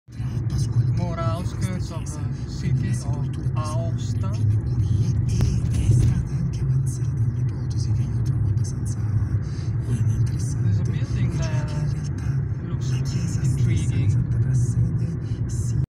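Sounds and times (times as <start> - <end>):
car engine and tyre rumble: 0.1 - 15.9.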